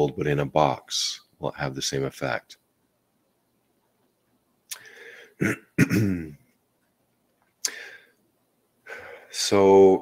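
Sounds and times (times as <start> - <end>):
man clearing his throat: 5.4 - 6.4.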